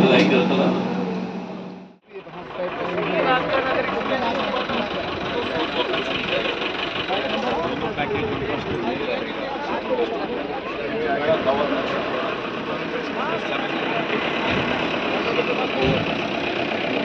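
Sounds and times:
engine noise: 0.0 - 17.0
people talking outdoors: 0.0 - 17.0.

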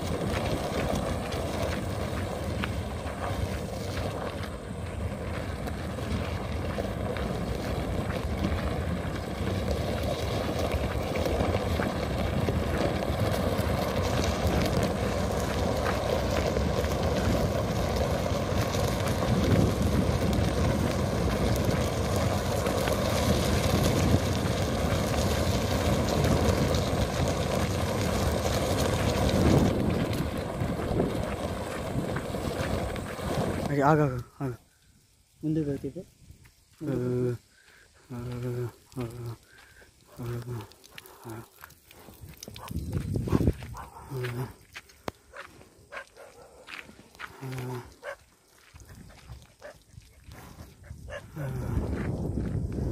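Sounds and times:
rough dragging noise: 0.0 - 34.2
hooves clicking and clopping: 0.0 - 34.3, 35.6 - 52.9
wind buffeting microphone: 0.0 - 34.6, 40.2 - 44.6, 46.7 - 52.9.

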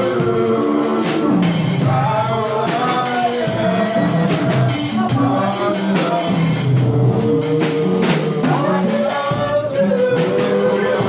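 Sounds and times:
drum kit beat: 0.0 - 11.0
live church band music: 0.0 - 11.0.

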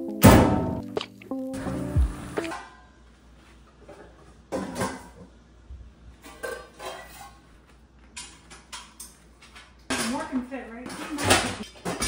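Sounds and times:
metal pots and pans clanking: 4.5 - 5.2, 6.2 - 7.4, 10.9 - 12.0.

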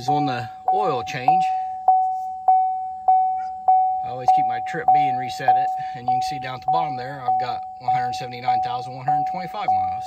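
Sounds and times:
dashboard warning chime dinging: 0.0 - 10.0.

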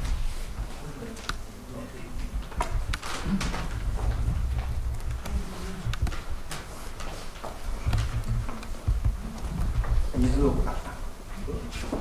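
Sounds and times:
microphone handling noise: 2.2 - 10.8.

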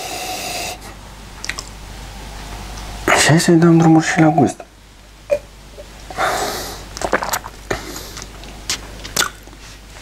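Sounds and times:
lip smacks and tongue clicks: 1.4 - 1.8, 7.0 - 9.6
man slurping a drink: 7.0 - 8.3.

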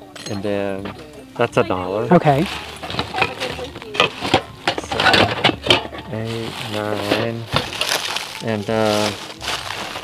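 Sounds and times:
rustling: 2.4 - 10.0
items knocking in cardboard box: 6.8 - 8.2.

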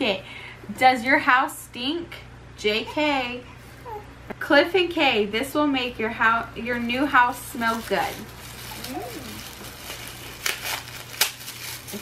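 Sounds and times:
tissue paper crinkling: 7.2 - 12.0.

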